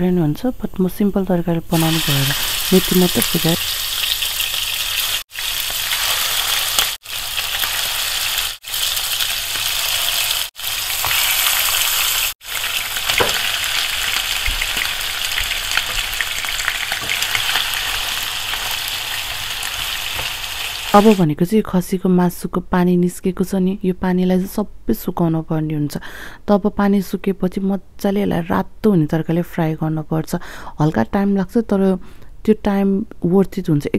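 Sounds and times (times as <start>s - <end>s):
meat sizzling in hot oil: 1.7s - 21.2s.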